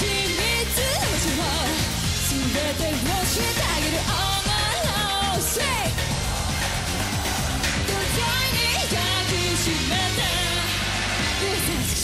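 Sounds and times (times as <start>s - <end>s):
woman singing into microphone: 0.0s - 5.9s, 7.9s - 10.8s
pop band accompaniment: 0.0s - 12.0s.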